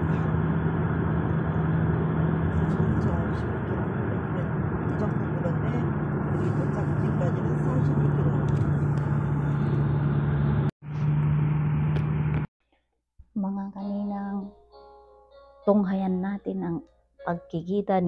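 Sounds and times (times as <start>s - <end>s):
car engine and tyre drone: 0.0s - 12.5s
constant low hum: 0.0s - 12.5s.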